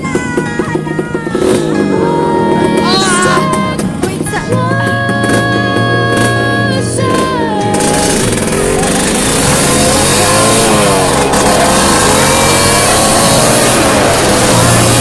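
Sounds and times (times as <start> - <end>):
motorcycle engine: 0.0 - 15.0
music with held notes: 0.0 - 15.0.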